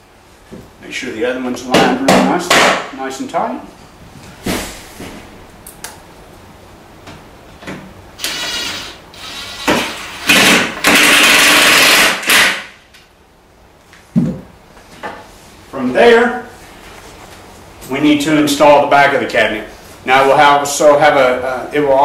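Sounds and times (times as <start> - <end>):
thump: 4.4 - 5.2
cordless drill driving screw: 8.2 - 12.6.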